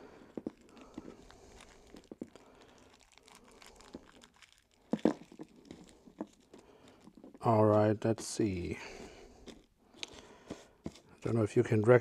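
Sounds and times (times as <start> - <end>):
plastic bags crinkling: 0.0 - 12.0.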